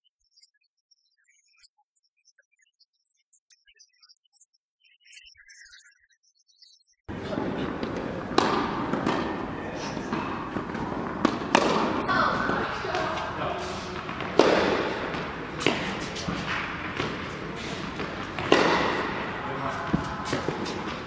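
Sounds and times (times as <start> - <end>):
background voices: 7.1 - 21.0
rackets hitting tennis balls: 7.1 - 21.0.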